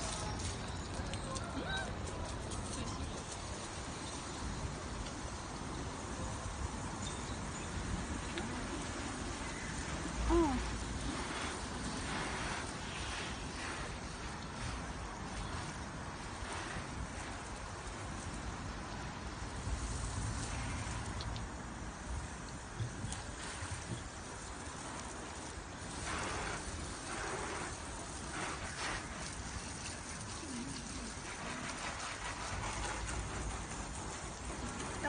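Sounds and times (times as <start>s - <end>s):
water spray hitting a car: 7.8s - 35.0s.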